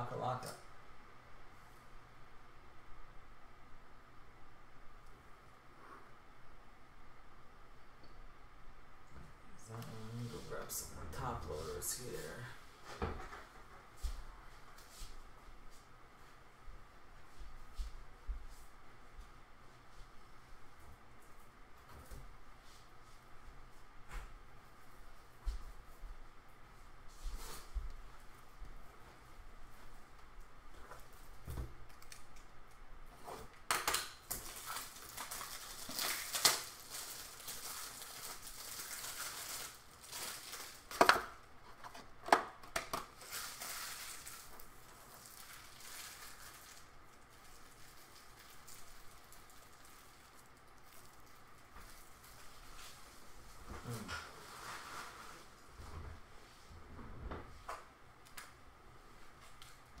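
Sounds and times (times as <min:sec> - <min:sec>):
plastic packaging crinkling: 0:33.9 - 0:41.5, 0:43.0 - 0:53.0.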